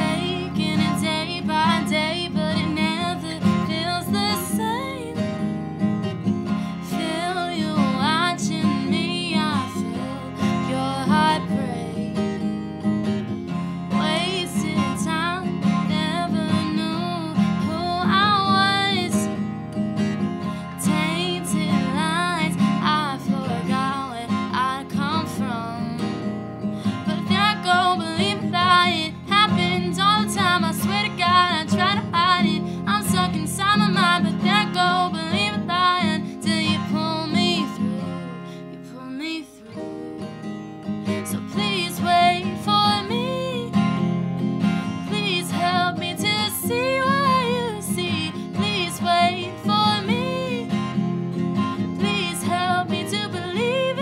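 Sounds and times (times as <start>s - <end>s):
woman singing: 0.0s - 5.7s, 6.6s - 12.6s, 13.9s - 19.5s, 20.4s - 44.1s, 44.8s - 51.0s, 51.6s - 54.0s
acoustic guitar strumming: 0.0s - 54.0s.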